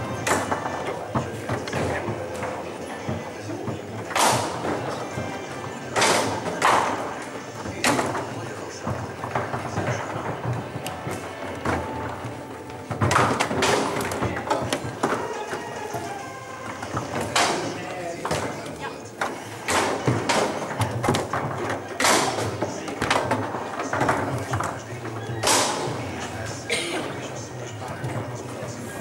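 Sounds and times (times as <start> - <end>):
foosball ball and rods knocking: 0.0 - 26.6
background music: 0.0 - 29.0
voices: 0.0 - 29.0.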